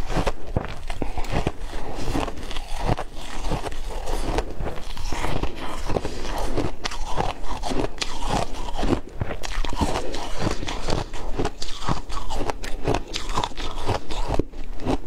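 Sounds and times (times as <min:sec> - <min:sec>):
person crunching shaved ice: 0:00.0 - 0:15.0.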